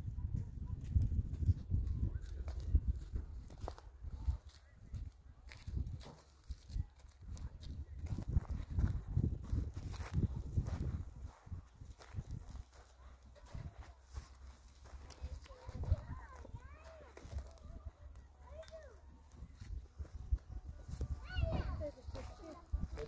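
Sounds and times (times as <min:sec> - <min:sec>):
footsteps crunching on stony ground: 0:00.8 - 0:23.0.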